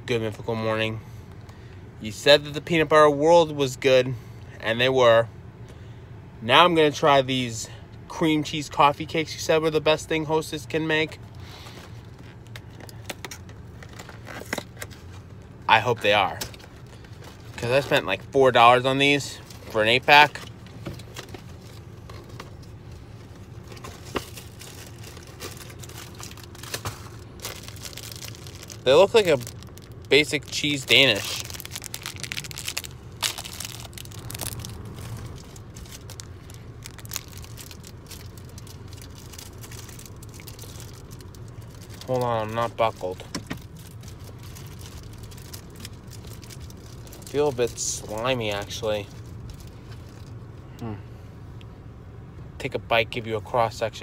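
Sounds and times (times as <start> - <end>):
car cabin hum: 5.4 - 54.0.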